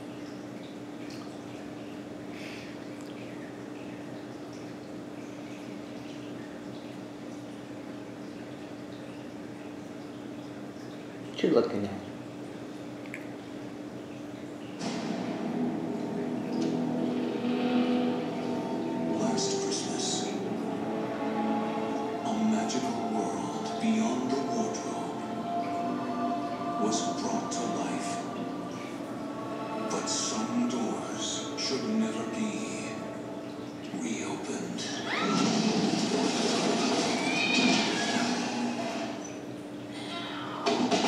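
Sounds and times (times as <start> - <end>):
film logo music on television: 14.8 - 34.6, 35.2 - 39.2.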